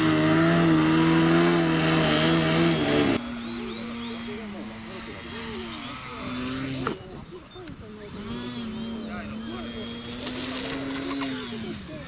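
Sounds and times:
model plane motor droning: 0.0s - 12.0s.

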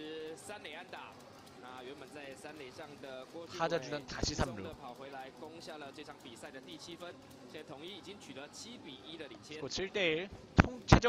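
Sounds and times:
man talking: 0.0s - 11.0s
speech: 0.0s - 11.0s.

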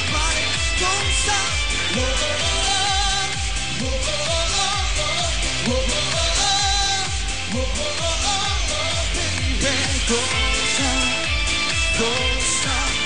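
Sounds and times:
person singing: 0.0s - 13.0s
synthesizers: 0.0s - 13.0s.

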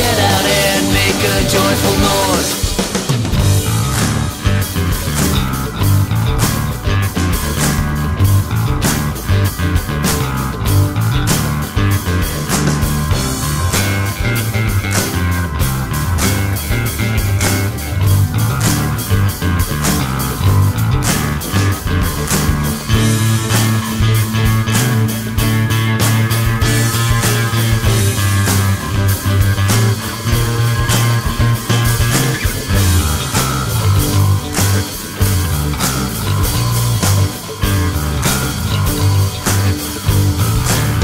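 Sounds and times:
bass guitar: 0.0s - 41.0s
drums keeping a steady beat: 0.0s - 41.0s
electric guitar: 0.0s - 41.0s.

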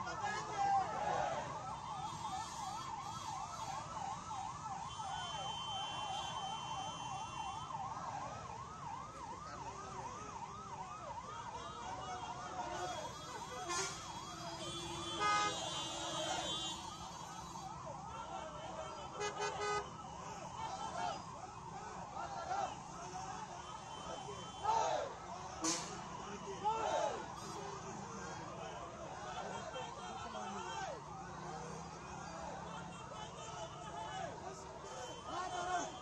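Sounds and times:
siren yelping: 0.0s - 36.0s.

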